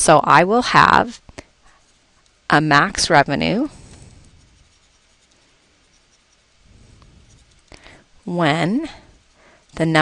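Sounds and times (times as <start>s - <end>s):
stylus scratching on tablet screen: 0.7s - 10.0s.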